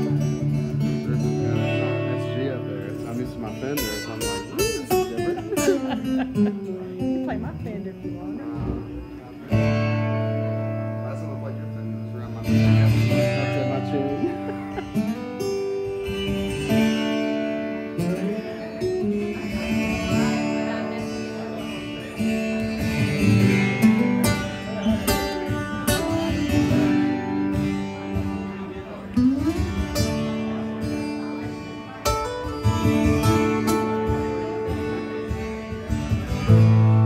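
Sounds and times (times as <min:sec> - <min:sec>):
live country band playing: 0:00.0 - 0:37.0
strummed acoustic guitar: 0:00.0 - 0:37.0.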